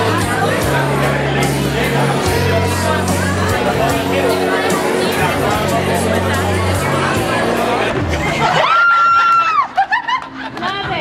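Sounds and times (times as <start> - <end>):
people chattering: 0.0 - 11.0
people laughing: 0.0 - 11.0.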